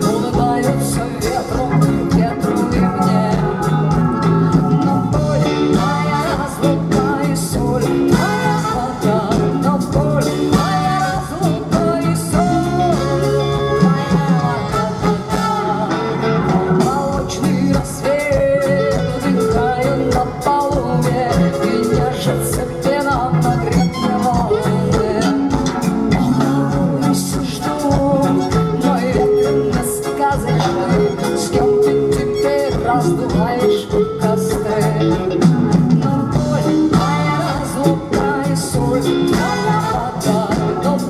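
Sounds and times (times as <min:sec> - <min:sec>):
electric guitar: 0:00.0 - 0:41.0
person singing: 0:00.0 - 0:41.0
saxophone: 0:00.0 - 0:41.0
trumpet: 0:08.1 - 0:17.1, 0:39.0 - 0:41.0.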